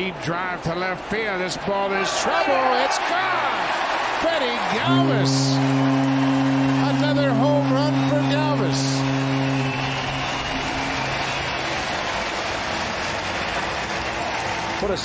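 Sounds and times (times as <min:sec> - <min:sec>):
crowd cheering: 0:00.0 - 0:15.0
low horn blast: 0:04.6 - 0:14.6.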